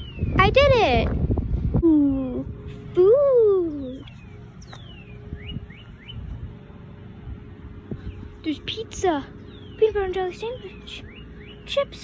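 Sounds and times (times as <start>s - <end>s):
bird whistling and chirping: 0.0s - 0.4s, 3.5s - 6.3s, 10.6s - 11.8s
low steady rumble: 0.0s - 12.0s.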